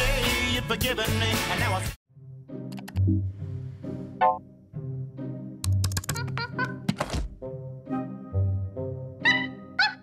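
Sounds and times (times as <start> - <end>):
light background music: 0.6 - 10.0
mouse and keyboard clicks: 5.6 - 6.4.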